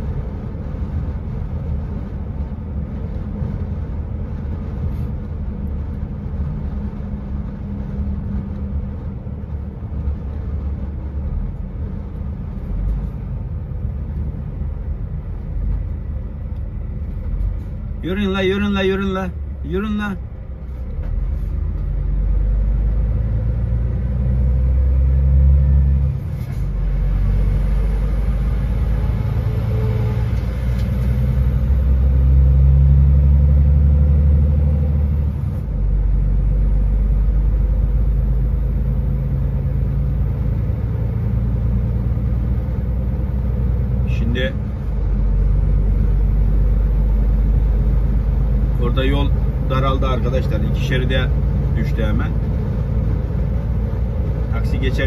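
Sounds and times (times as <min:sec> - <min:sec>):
heavy vehicle engine drone: 0:00.0 - 0:55.0.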